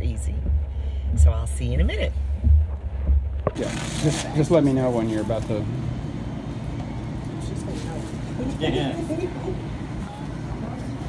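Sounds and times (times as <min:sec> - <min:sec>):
low room rumble: 0:00.0 - 0:11.0
faint voices: 0:03.5 - 0:11.0.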